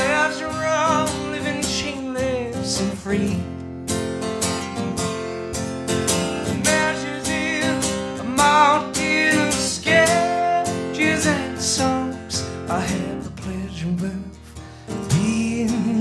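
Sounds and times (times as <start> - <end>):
acoustic guitar strummed: 0.0 - 16.0.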